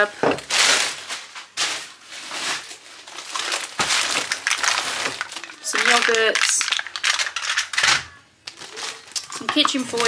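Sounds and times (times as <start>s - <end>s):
plastic bags rustling and crinkling: 0.0s - 10.0s.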